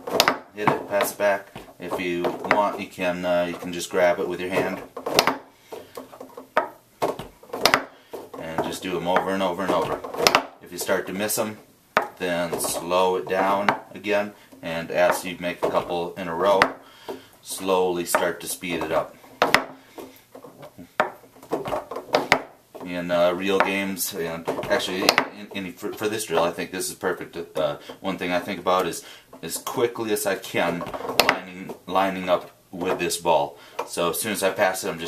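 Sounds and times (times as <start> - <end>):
foosball clacking on table: 0.0 - 11.3, 12.0 - 14.0, 15.0 - 17.3, 18.0 - 25.6, 30.6 - 31.8.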